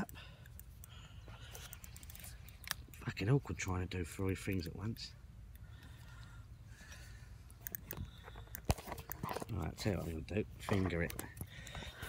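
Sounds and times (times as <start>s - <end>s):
light handling noise: 0.0s - 12.0s.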